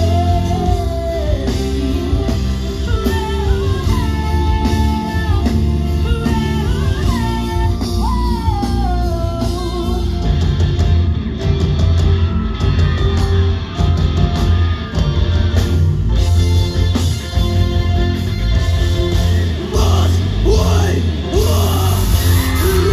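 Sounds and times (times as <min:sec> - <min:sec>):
live rock band playing: 0:00.0 - 0:22.9.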